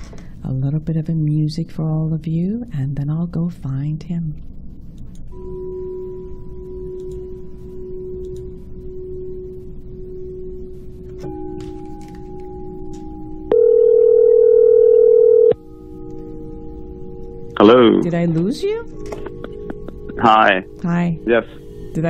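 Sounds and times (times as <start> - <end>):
telephone line tones: 5.4 - 18.0
loud telephone ringing tone: 13.5 - 15.6.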